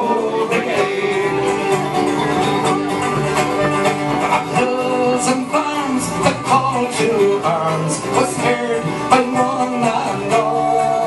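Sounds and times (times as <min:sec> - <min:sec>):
strummed acoustic guitars: 0:00.0 - 0:11.0
flute melody: 0:01.0 - 0:05.2.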